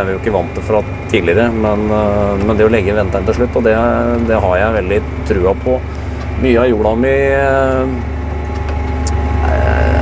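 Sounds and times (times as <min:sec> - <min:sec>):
tractor diesel engine drone: 0:00.0 - 0:10.0.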